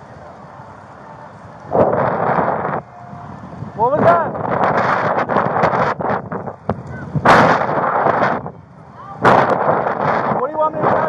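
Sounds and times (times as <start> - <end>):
loud rushing bursts of noise: 0.0 - 11.0.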